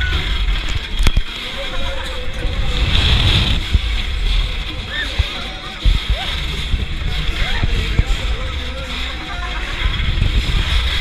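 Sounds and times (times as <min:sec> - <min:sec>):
wind buffeting microphone: 0:01.8 - 0:08.6.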